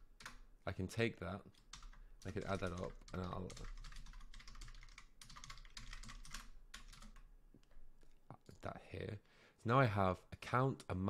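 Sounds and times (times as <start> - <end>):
rapid computer keyboard keystrokes: 1.5 - 7.3.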